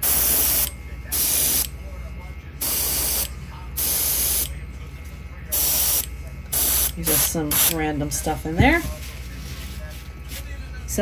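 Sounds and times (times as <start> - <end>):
exhaust fan humming: 0.0 - 11.0.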